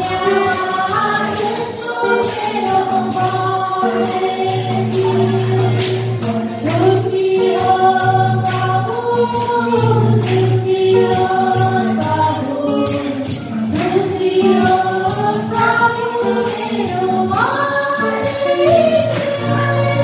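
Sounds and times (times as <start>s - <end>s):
jingling percussion: 0.0s - 20.0s
musical accompaniment: 0.0s - 20.0s
women singing worship song: 0.0s - 20.0s.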